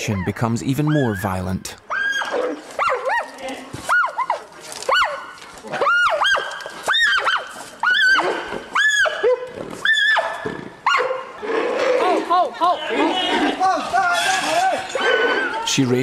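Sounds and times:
panda squealing: 0:00.0 - 0:02.6, 0:05.8 - 0:10.4, 0:11.8 - 0:15.7.

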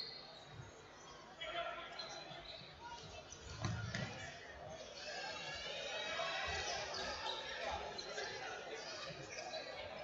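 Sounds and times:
murmur of spectators: 0:00.0 - 0:10.0.

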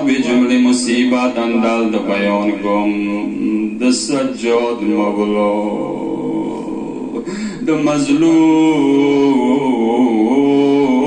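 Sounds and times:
man chanting into microphone: 0:00.0 - 0:11.0.

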